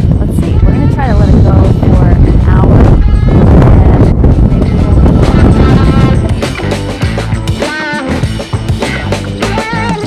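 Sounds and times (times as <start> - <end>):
wind buffeting microphone: 0.0 - 7.6
background music: 0.0 - 10.0.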